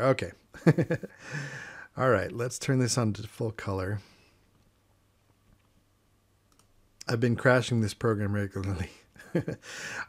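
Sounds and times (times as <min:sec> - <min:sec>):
computer mouse clicks: 0:06.5 - 0:06.8.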